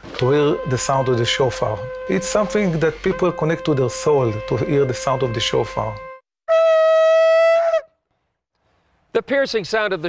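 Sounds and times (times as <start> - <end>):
shofar blast: 0.0 - 8.0.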